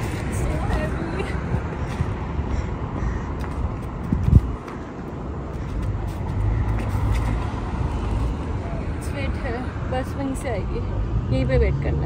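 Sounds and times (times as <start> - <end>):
rumble of passing traffic: 0.0 - 12.0.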